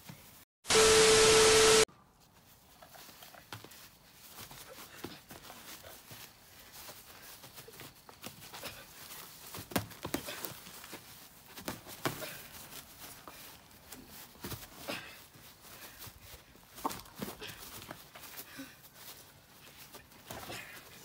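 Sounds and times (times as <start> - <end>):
boxing gloves smacking: 9.6 - 10.6.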